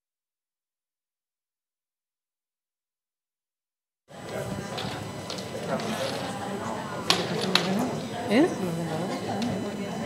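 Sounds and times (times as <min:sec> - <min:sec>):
indistinct talk of people: 0:04.1 - 0:10.0.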